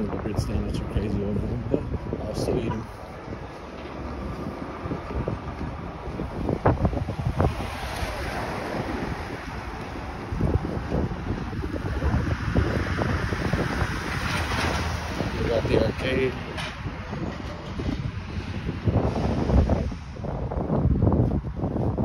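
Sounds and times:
road traffic: 0:00.0 - 0:22.0
wind buffeting microphone: 0:00.0 - 0:22.0
passing vehicle tyre hiss: 0:18.3 - 0:20.5.

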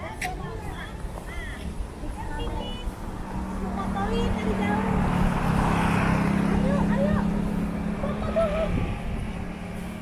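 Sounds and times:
people talking: 0:00.0 - 0:05.2, 0:06.4 - 0:08.9.

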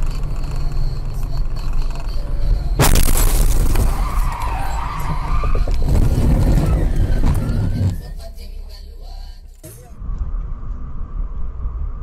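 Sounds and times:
tyres skidding: 0:00.0 - 0:08.8
car crash rumbling: 0:02.8 - 0:08.4
car scraping: 0:02.8 - 0:10.0.

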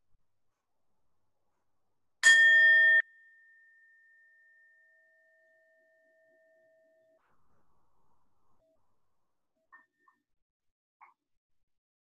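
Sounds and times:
singing bowl ringing: 0:02.2 - 0:07.2.

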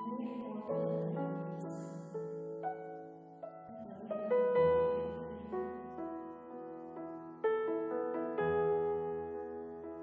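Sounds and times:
electric piano notes and chords: 0:00.0 - 0:10.0.

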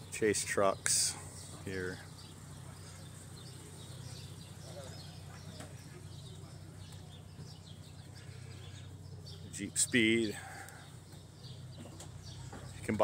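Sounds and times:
faint distant voices: 0:00.0 - 0:13.0
faint bird chirps: 0:01.2 - 0:13.0.

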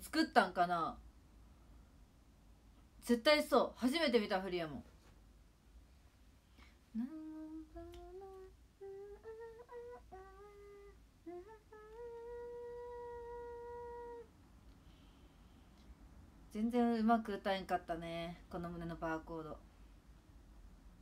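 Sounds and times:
woman softly humming: 0:06.9 - 0:14.3.

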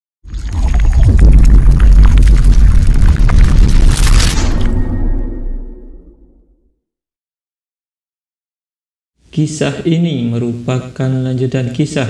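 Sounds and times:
deep rumble with crackling clicks: 0:00.4 - 0:04.7.

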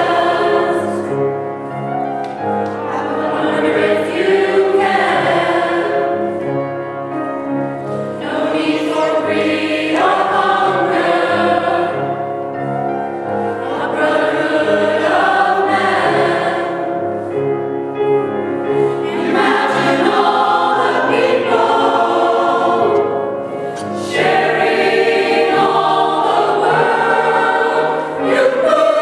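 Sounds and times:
mixed choir singing: 0:00.0 - 0:01.2, 0:02.8 - 0:06.6, 0:08.1 - 0:17.3, 0:18.7 - 0:29.0.

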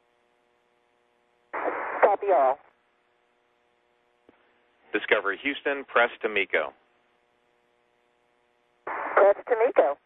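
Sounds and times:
faint steady hum of tones: 0:00.0 - 0:10.0.

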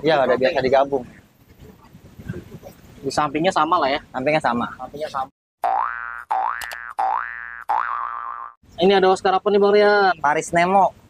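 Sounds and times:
cartoon boing sound effect: 0:05.6 - 0:08.6
man talking: 0:08.8 - 0:11.0.

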